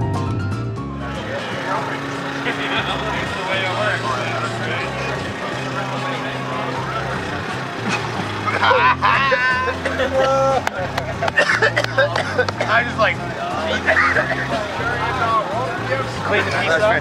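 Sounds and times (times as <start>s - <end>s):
people chattering: 1.0s - 17.0s.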